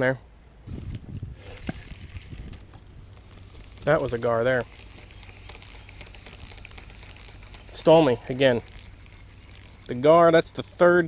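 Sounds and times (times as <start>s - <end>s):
fishing reel cranking and ticking: 0.6s - 11.0s.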